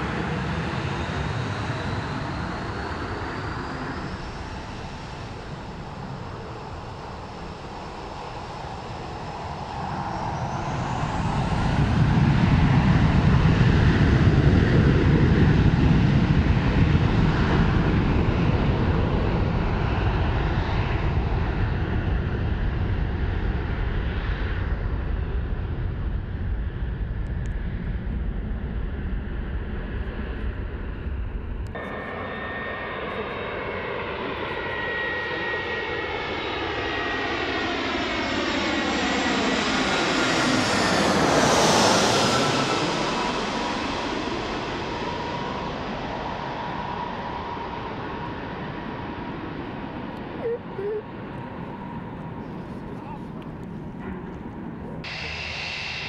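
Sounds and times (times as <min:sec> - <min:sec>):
airliner engine whine overhead: 0:00.0 - 0:56.0
jet engines rumbling on runway: 0:00.0 - 0:56.0.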